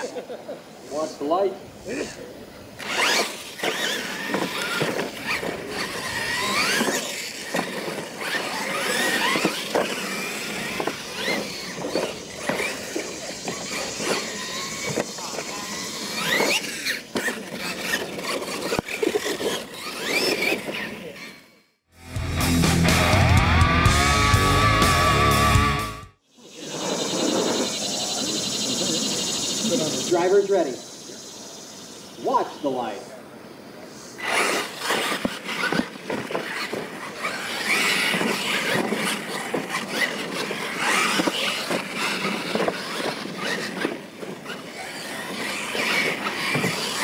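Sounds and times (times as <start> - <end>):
electric motors whining: 1.9 - 33.1, 33.9 - 47.0
music: 22.0 - 26.2.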